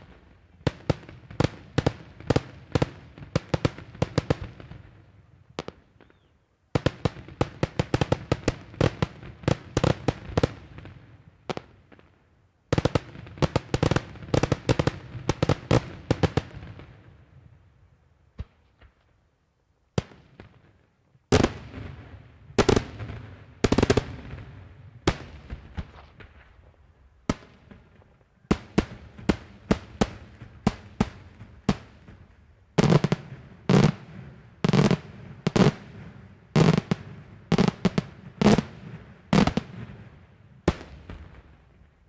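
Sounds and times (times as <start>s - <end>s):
fireworks bursting with echoing bangs: 0.0s - 17.4s, 19.9s - 42.0s.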